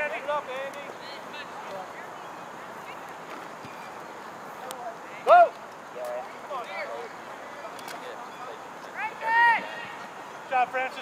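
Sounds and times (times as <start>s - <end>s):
open-air background noise: 0.0s - 11.0s
people shouting: 5.2s - 5.6s, 9.0s - 10.2s.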